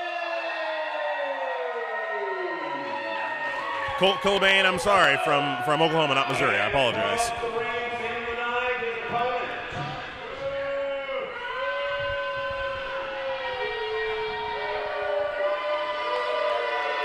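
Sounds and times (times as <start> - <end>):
crowd booing: 0.0 - 17.0.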